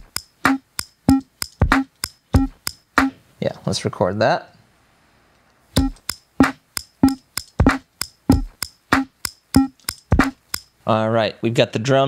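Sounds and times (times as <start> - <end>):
drum machine beat: 0.0 - 3.2, 5.8 - 10.7.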